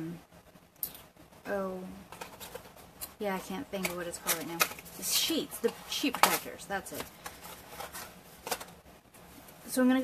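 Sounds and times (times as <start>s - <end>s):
handling noise on a paper desk: 2.1s - 8.8s.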